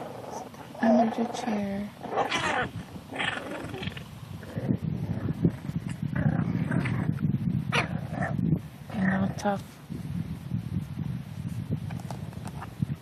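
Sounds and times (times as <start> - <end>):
puppies low rumbling growl: 0.0 - 9.6
puppies high-pitched yelps: 2.1 - 4.0.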